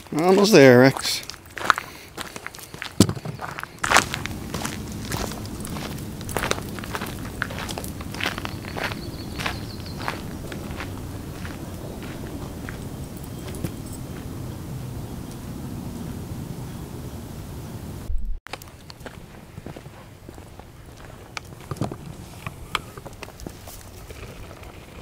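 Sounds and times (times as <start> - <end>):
footsteps on gravel: 0.0 - 14.4, 18.5 - 25.0.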